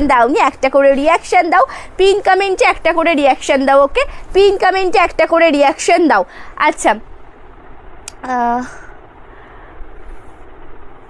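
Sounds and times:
low hiss and rumble: 0:00.0 - 0:11.0.

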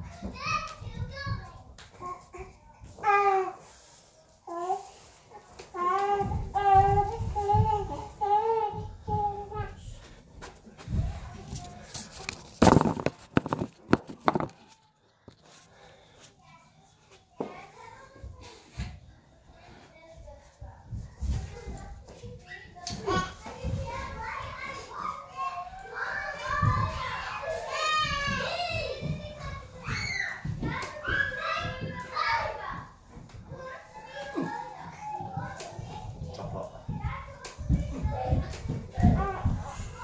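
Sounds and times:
children talking and playing: 0:00.0 - 0:40.0.

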